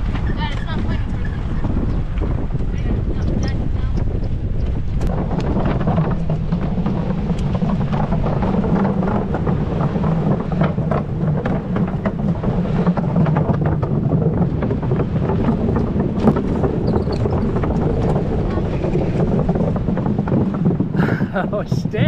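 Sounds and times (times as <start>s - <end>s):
crackles: 0.0s - 22.0s
wind buffeting microphone: 0.0s - 22.0s.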